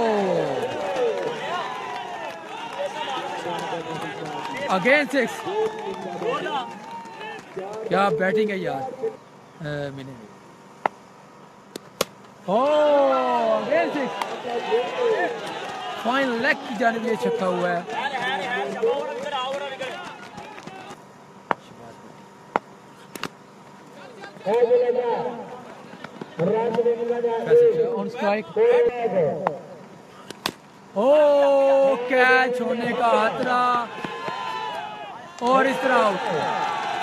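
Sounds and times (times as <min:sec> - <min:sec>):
men talking and calling out: 0:00.0 - 0:37.0
man shouting yeah: 0:12.5 - 0:18.4.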